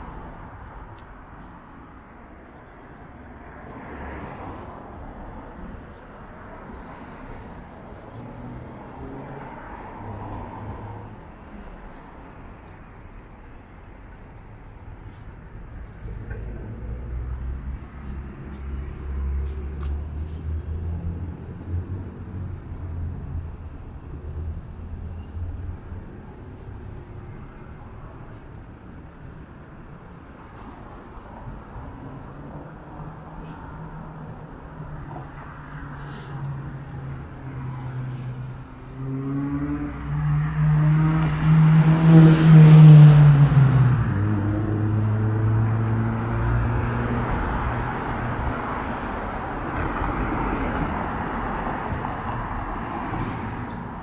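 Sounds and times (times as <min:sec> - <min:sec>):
vehicle passing close: 0:36.0 - 0:54.0.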